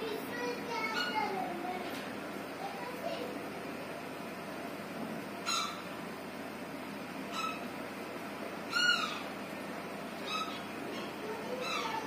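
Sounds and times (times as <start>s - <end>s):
animal high-pitched calls: 5.4s - 5.9s, 7.3s - 7.7s, 8.7s - 9.4s, 10.2s - 12.0s.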